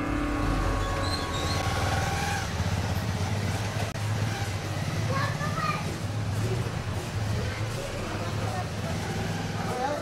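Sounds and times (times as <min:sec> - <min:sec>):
busy street noise: 0:00.0 - 0:10.0
small motorcycle engine: 0:00.0 - 0:10.0.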